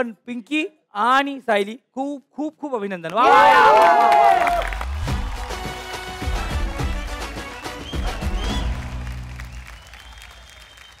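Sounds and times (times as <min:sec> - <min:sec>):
audience clapping: 0:03.2 - 0:11.0
band music: 0:05.1 - 0:09.0.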